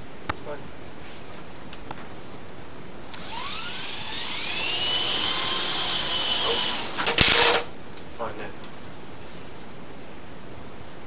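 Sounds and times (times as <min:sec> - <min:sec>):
rc helicopter whine: 0:03.2 - 0:07.7.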